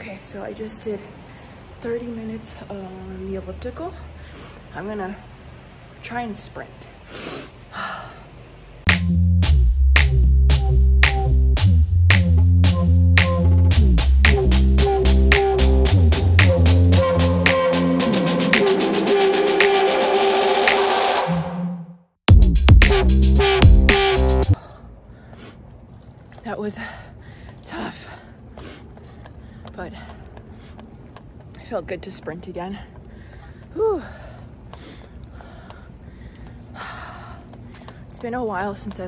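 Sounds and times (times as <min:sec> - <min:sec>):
woman breathing hard: 0:07.0 - 0:08.4, 0:33.0 - 0:37.9
background music with steady beat: 0:08.9 - 0:21.6, 0:22.3 - 0:24.6.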